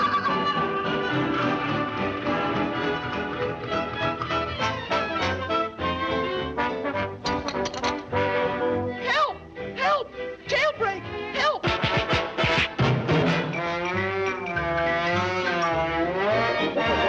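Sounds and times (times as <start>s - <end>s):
orchestral cartoon music with brass: 0.0s - 17.0s.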